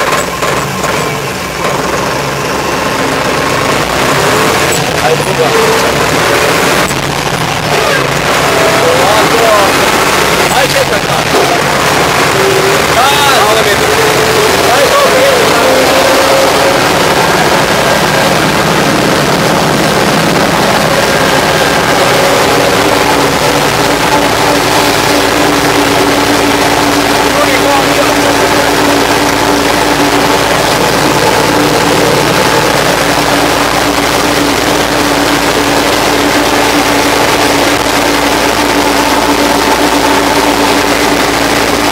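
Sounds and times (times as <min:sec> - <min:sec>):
tractor diesel engine running: 0:00.0 - 0:41.9.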